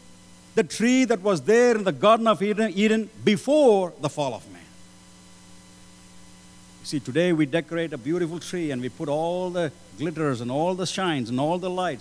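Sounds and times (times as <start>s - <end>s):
electrical mains hum: 0.0s - 12.0s
man speaking: 0.6s - 4.7s, 6.8s - 12.0s.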